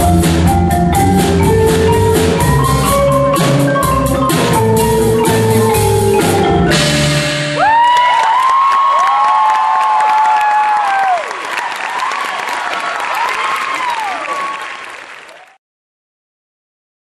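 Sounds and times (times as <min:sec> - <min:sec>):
audience applauding: 0:07.6 - 0:15.6.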